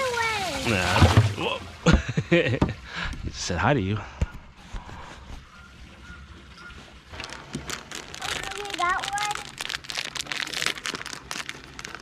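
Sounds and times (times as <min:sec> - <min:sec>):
child's high-pitched vocal sound: 0:00.0 - 0:00.6, 0:08.2 - 0:09.5
crackling and clicking handling noise: 0:07.1 - 0:12.0.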